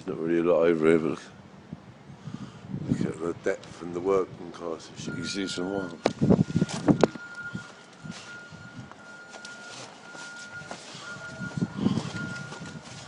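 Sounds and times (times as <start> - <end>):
outdoor background noise: 0.0 - 13.0
muffled low rustle: 1.1 - 13.0
steady high beeps: 5.0 - 12.8.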